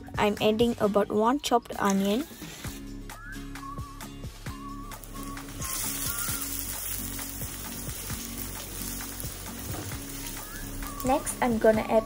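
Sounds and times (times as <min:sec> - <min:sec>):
onion sizzling in hot oil: 0:04.4 - 0:12.0.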